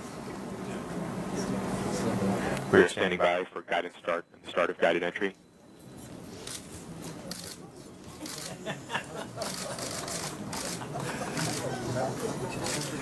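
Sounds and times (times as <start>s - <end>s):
people chattering: 0.1s - 13.0s
camera shutter clicks: 9.5s - 10.8s.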